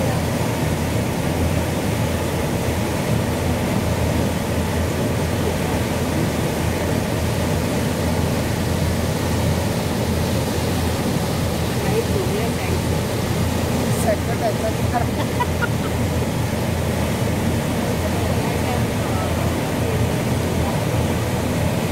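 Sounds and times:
boat engine running: 0.0s - 21.9s.

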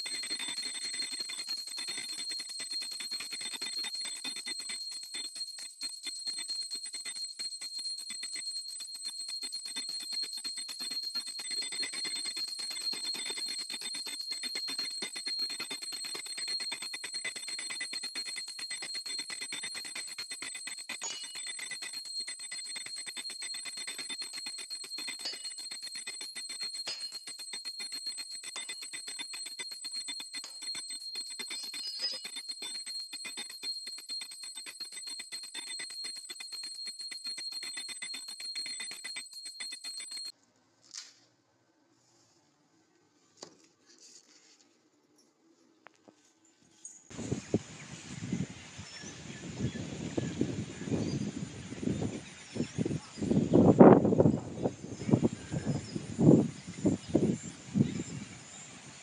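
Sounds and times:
small hand bell ringing rapidly: 0.0s - 40.4s, 49.6s - 58.6s.

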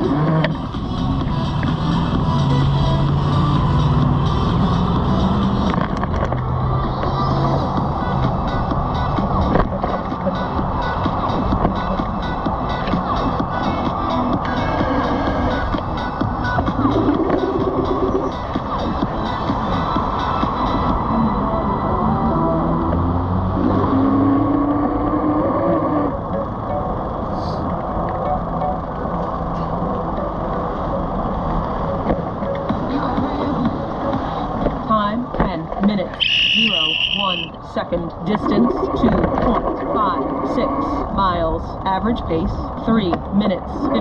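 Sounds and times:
music playing: 0.0s - 38.9s
wind and road noise: 0.0s - 44.0s.

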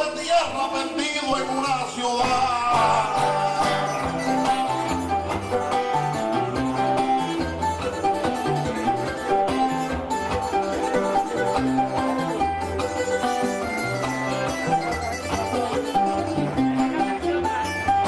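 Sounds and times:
plucked string guitar music: 0.0s - 18.0s.

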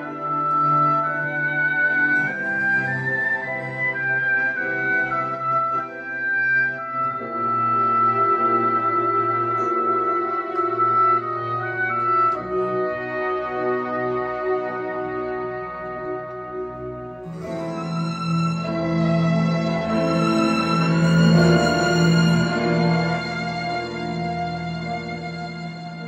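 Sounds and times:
orchestral ballet music: 0.0s - 26.0s.

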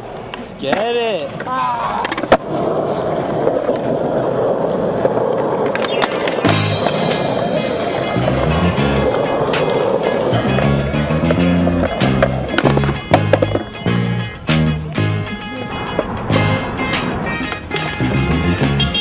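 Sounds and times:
skateboard wheels rolling on concrete: 0.0s - 19.0s
music with stepping bassline: 6.5s - 9.1s, 10.4s - 15.6s, 16.3s - 19.0s.

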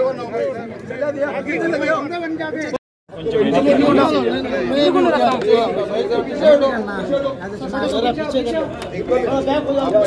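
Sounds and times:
men chattering in a crowd: 0.0s - 10.0s.

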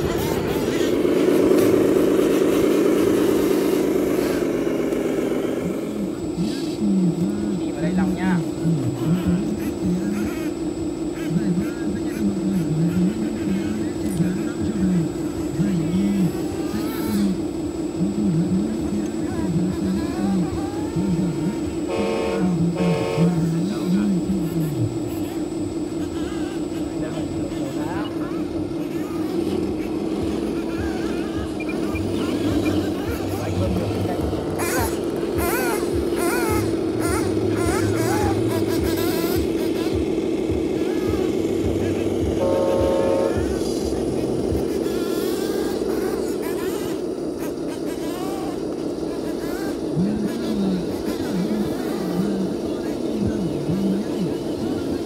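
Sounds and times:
hydraulic pump motor whining: 0.0s - 6.4s, 19.0s - 24.0s, 24.9s - 50.1s.

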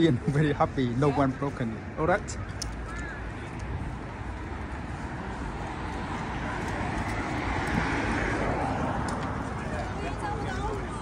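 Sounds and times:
street traffic rumble: 0.0s - 11.0s
vehicle passing: 3.7s - 11.0s.

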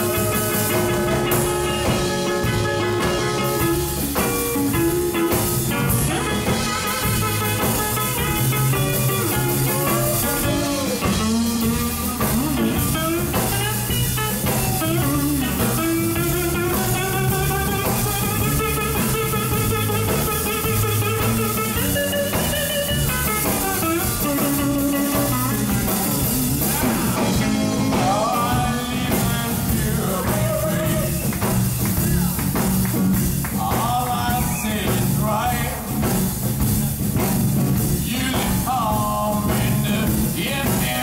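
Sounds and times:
electric guitar lead: 0.0s - 38.1s
live band playing: 0.0s - 41.0s.

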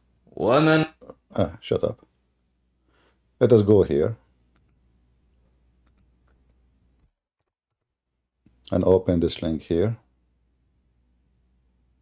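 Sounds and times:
faint computer mouse clicks: 4.5s - 4.8s, 5.8s - 6.5s.

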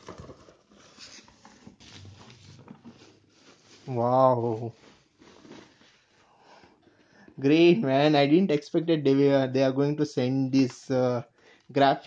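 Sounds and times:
plastic wrapping crinkling: 0.0s - 6.2s.

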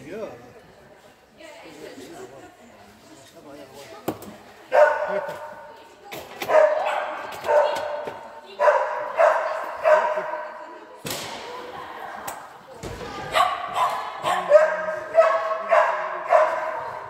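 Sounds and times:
dog barking in echoing hall: 4.7s - 5.7s, 6.4s - 10.7s, 13.3s - 17.0s.

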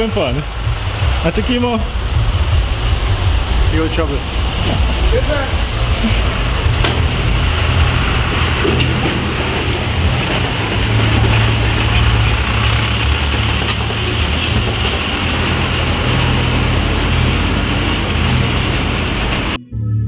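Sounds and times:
garbage truck diesel engine: 0.0s - 19.6s.

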